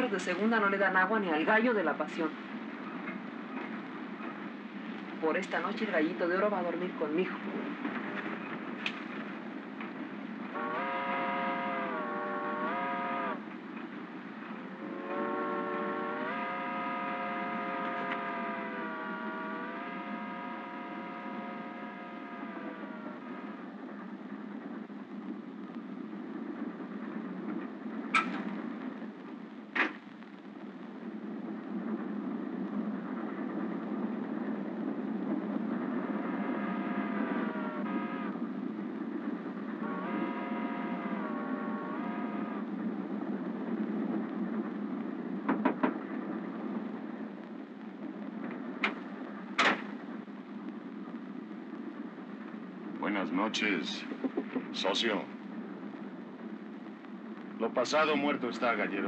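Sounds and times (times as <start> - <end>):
passenger train rumble: 0.0 - 59.0
long pitched tones: 10.5 - 13.4, 14.7 - 23.8, 35.8 - 38.5, 39.7 - 42.7.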